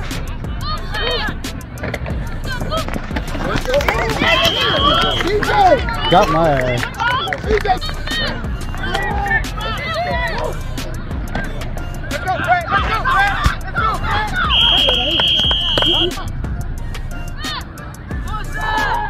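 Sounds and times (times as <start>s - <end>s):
people shouting and cheering: 0.0s - 16.4s, 17.2s - 19.0s
referee's whistle: 4.1s - 6.4s, 14.4s - 16.2s.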